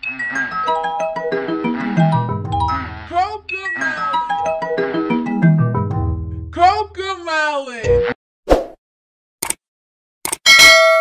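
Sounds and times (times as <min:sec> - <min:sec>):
bright bell ding: 0:10.5 - 0:11.0.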